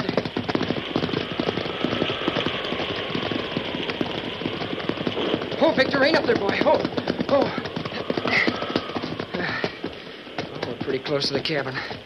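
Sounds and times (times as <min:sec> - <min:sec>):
horse hoofbeats clattering: 0:00.0 - 0:12.0
rain hiss: 0:00.0 - 0:12.0.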